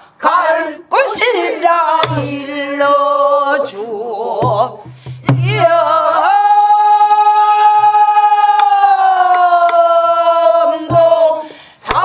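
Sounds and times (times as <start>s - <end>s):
group singing a long note: 0.0s - 4.4s, 5.2s - 12.0s
soft drum strokes: 2.0s - 2.4s.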